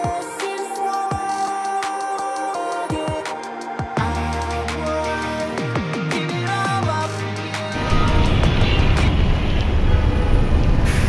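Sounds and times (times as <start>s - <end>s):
traffic low rumble: 7.8s - 11.0s.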